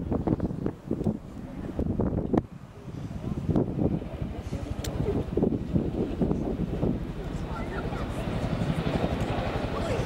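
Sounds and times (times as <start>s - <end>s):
wind buffeting microphone: 0.0s - 10.0s
low voices talking: 2.6s - 10.0s.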